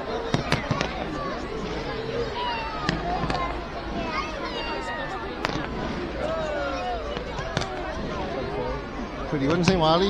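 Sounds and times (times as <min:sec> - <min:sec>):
fireworks bangs: 0:00.0 - 0:09.9
crowd talking: 0:00.0 - 0:10.0.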